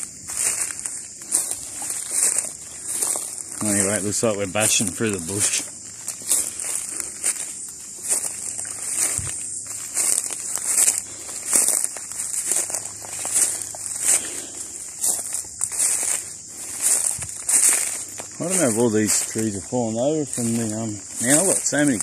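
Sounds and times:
bush crackling and rustling: 0.0s - 22.0s
footsteps crunching on dry leaves: 0.0s - 22.0s.

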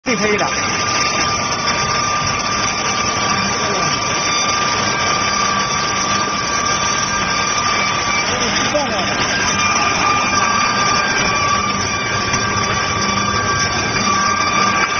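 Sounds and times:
factory machinery running: 0.0s - 14.9s
high-pitched machine whine: 0.0s - 14.9s.

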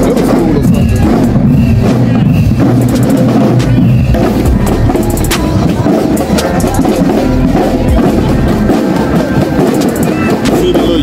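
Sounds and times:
marching drumline playing: 0.0s - 11.0s.

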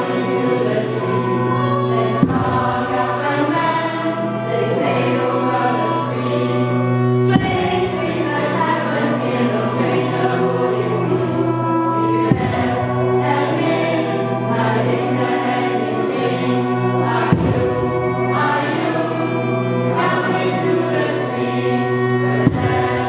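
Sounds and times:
choir singing: 0.0s - 23.0s.

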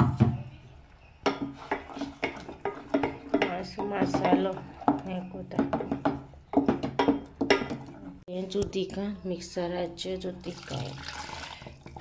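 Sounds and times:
stirring thick paste: 0.6s - 8.3s
spatula knocking steel pot: 1.2s - 7.9s.

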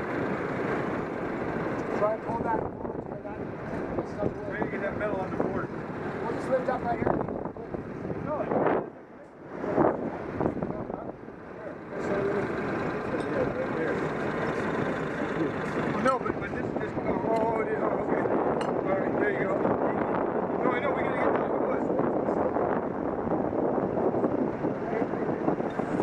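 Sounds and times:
engine running steadily: 0.0s - 26.0s
people talking: 1.9s - 22.8s, 24.7s - 25.8s.

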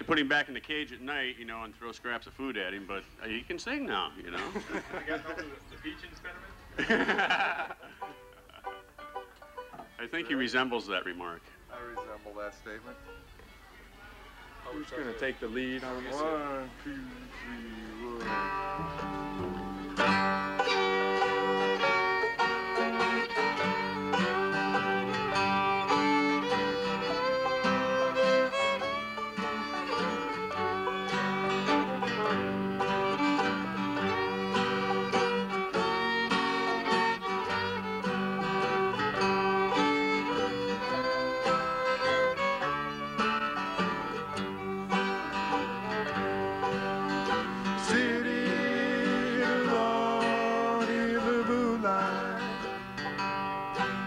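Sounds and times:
fiddle: 0.0s - 54.0s
mandolin: 0.0s - 54.0s
banjo: 6.8s - 13.6s, 14.6s - 54.0s
acoustic guitar: 14.5s - 54.0s
upright bass: 16.2s - 54.0s.

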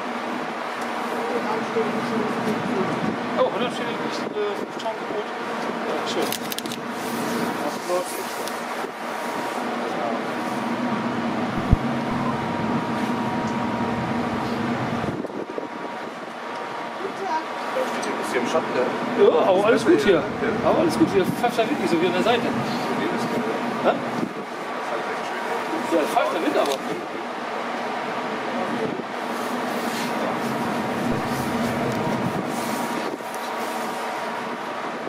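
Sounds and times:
machinery hum: 6.9s - 19.2s, 27.1s - 35.0s.

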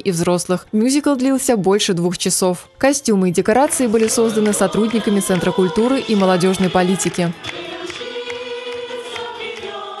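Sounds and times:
accompanying music: 0.0s - 10.0s
choir singing sustained note: 4.2s - 10.0s.

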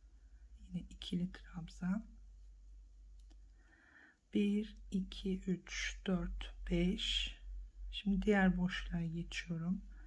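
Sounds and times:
steady low hum: 0.0s - 10.0s
faint clicks: 3.1s - 3.5s.

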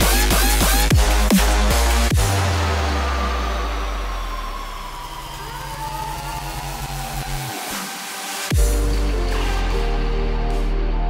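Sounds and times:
synth tone sliding down: 2.6s - 8.0s.

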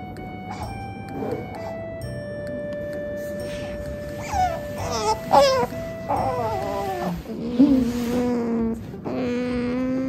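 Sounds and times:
otter whining: 0.0s - 10.0s.

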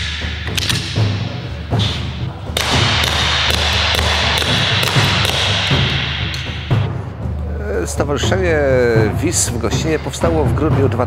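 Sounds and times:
background music: 0.0s - 11.0s
sharp gunshots: 2.6s - 6.6s.

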